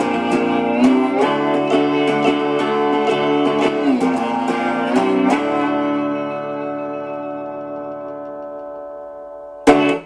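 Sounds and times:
electric guitar chord ringing: 0.0s - 10.0s.

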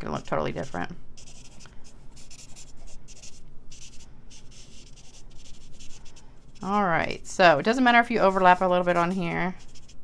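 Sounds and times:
marker scratching on paper: 0.0s - 6.8s, 8.1s - 10.0s.

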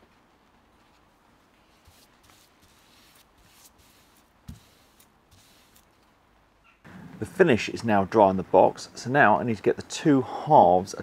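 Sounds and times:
paintbrush brushing on wood: 0.8s - 5.9s.

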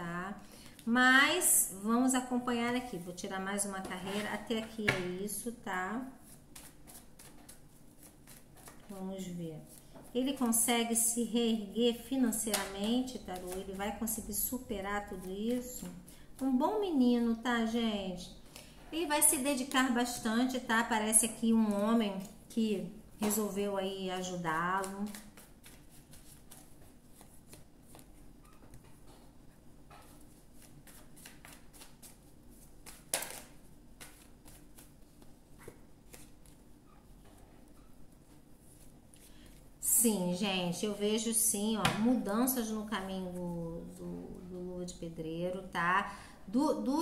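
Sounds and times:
cards being shuffled: 6.2s - 9.0s, 24.2s - 29.2s, 30.0s - 39.6s.

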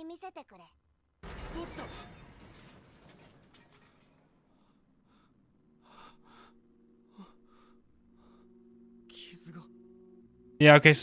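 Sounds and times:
soft breaths: 4.4s - 9.8s.

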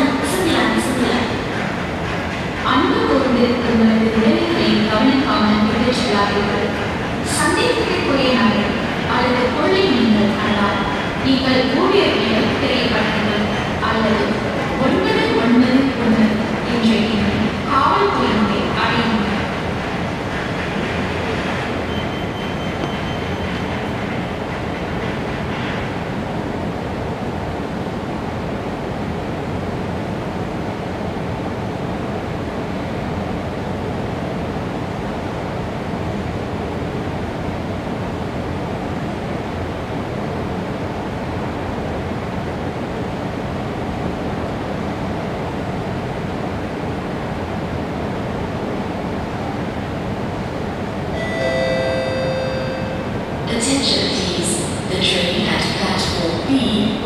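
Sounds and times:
station platform rumble and hum: 0.0s - 57.0s
faint high whine: 51.1s - 55.4s
multi-tone chime: 51.2s - 53.1s.

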